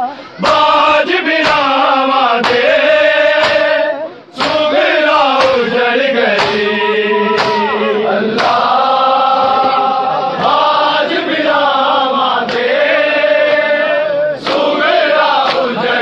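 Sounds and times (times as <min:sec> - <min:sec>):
men chanting a lament: 0:00.0 - 0:16.0
hands slapping chests: 0:02.4 - 0:02.7, 0:03.4 - 0:03.7, 0:04.4 - 0:04.7, 0:05.3 - 0:05.7, 0:06.3 - 0:07.8, 0:08.4 - 0:08.7, 0:12.4 - 0:12.8, 0:14.4 - 0:14.8, 0:15.4 - 0:15.8.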